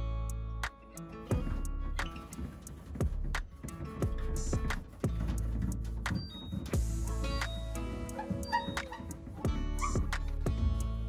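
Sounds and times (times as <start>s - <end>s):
background music with plucked notes: 0.0s - 11.0s.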